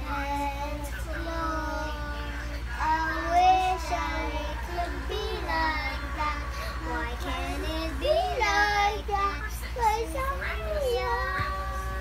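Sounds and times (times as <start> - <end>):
girls singing: 0.0 - 12.0.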